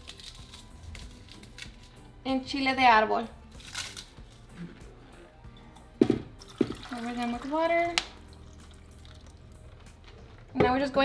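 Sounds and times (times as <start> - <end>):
water splashing into saucepan: 6.4 - 9.5.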